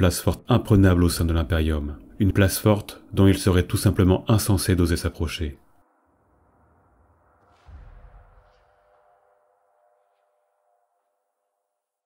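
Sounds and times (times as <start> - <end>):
faint musical drone: 0.0 - 7.0.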